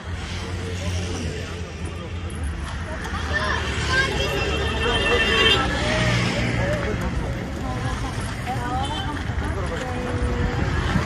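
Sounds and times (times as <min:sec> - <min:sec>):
low hum of road traffic: 0:00.0 - 0:11.0
people talking at once: 0:00.7 - 0:11.0.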